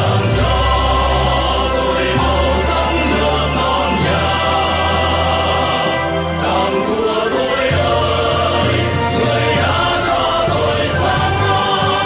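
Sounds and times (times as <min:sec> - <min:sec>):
instrumental backing with bass: 0:00.0 - 0:12.0
male vocal group singing: 0:00.0 - 0:12.0.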